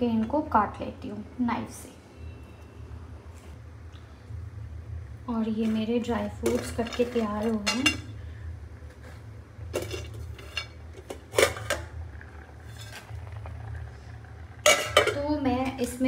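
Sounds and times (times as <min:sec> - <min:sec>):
steady low hum: 0:00.0 - 0:16.0
steel plate and utensils clinking: 0:14.6 - 0:15.2.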